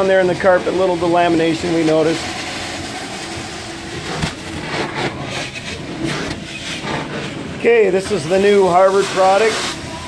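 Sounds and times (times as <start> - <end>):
vacuum suction rush: 0.6 - 10.0.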